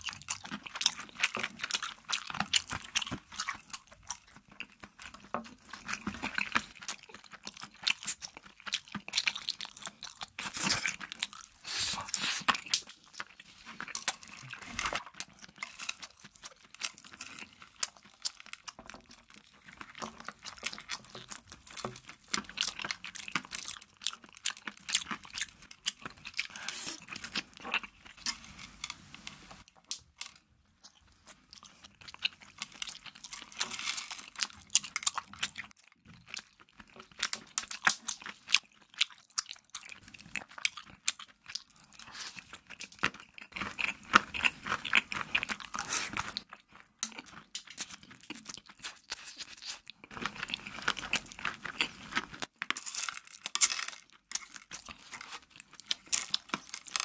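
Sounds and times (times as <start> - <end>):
chewing and crunching candy: 0.0 - 57.0.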